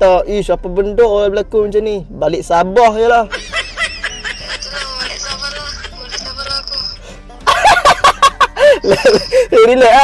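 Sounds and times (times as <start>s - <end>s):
man laughing hard: 3.2s - 9.7s
man speaking: 4.7s - 7.0s.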